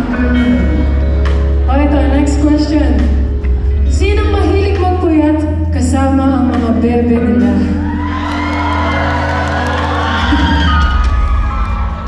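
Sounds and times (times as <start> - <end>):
live rock band playing: 0.0 - 5.0, 5.6 - 12.0
steady low bass note: 0.0 - 6.4
audience cheering and whooping: 7.4 - 12.0.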